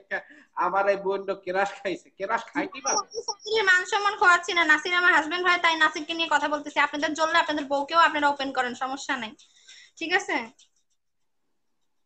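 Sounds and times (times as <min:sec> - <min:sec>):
man speaking: 0:00.0 - 0:03.3.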